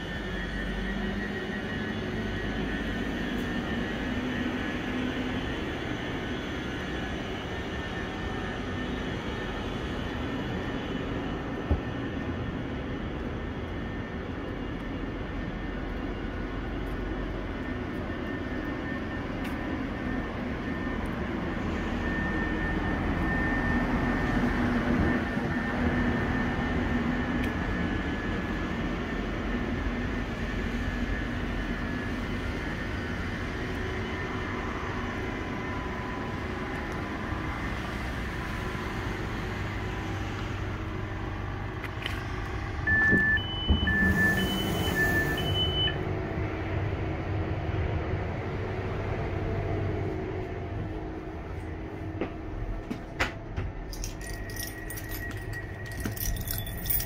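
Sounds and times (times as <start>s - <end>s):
train fans humming with whine: 0.0s - 57.0s.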